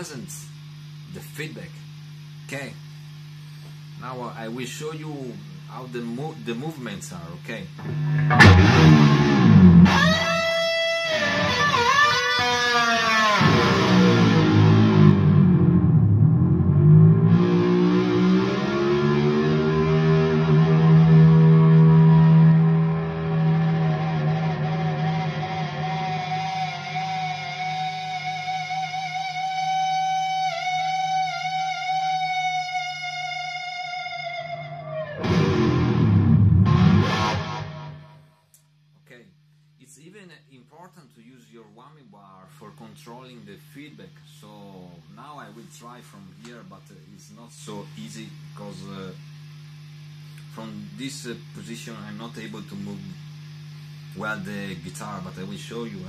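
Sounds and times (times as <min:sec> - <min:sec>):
amp feedback: 0:00.0 - 0:40.1, 0:42.6 - 0:56.0
distorted electric guitar: 0:07.7 - 0:38.4.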